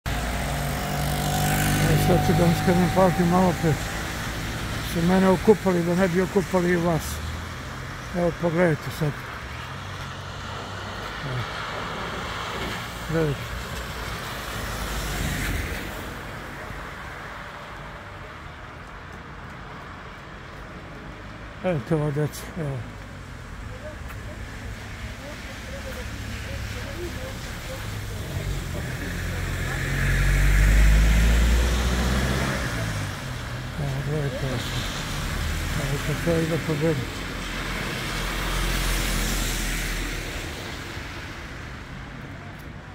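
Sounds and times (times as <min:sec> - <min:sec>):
car tyres on wet road: 0:00.0 - 0:42.9
traffic noise: 0:00.0 - 0:42.9
tyres hissing on wet surface: 0:23.9 - 0:41.5.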